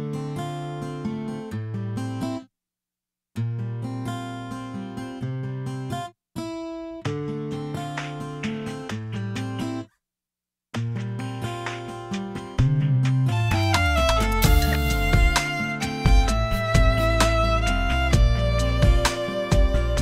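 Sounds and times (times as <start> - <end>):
acoustic guitar picking: 0.0 - 2.4, 3.4 - 9.9, 10.8 - 20.0.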